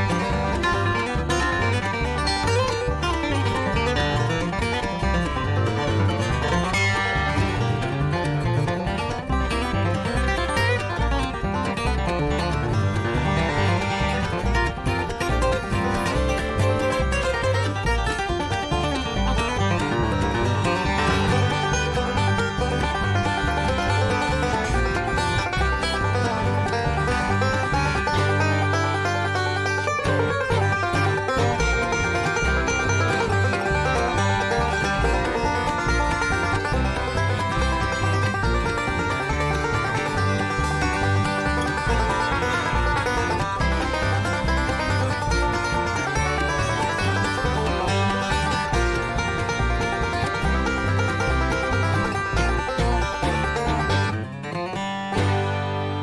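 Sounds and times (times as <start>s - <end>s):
banjo-led bluegrass band: 0.0s - 56.0s
walking bass line: 0.0s - 56.0s.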